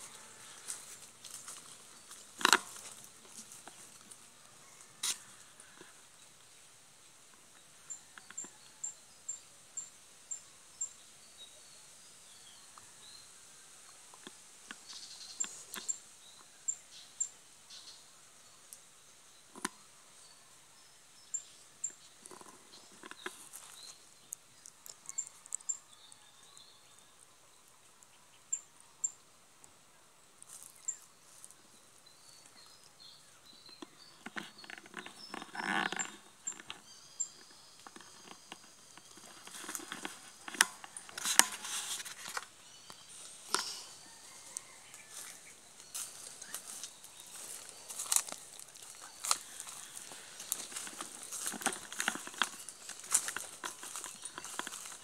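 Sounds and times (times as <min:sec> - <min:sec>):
rustling in dry leaves: 0:00.0 - 0:06.0, 0:37.4 - 0:55.0.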